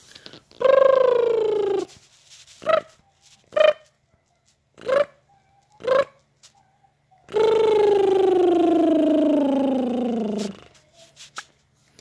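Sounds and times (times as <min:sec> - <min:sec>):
baby cooing: 0:00.6 - 0:02.0, 0:04.8 - 0:11.1.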